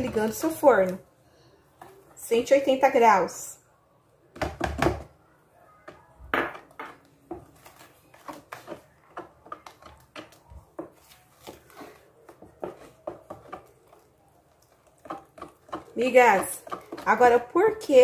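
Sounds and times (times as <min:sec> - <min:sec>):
wooden spoon stirring in plastic bowl: 0:00.0 - 0:01.1, 0:05.8 - 0:18.0.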